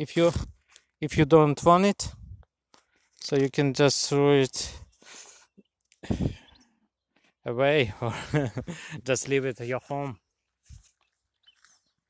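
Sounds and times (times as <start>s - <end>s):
person speaking: 0.0s - 2.4s, 3.2s - 4.9s, 7.5s - 10.2s.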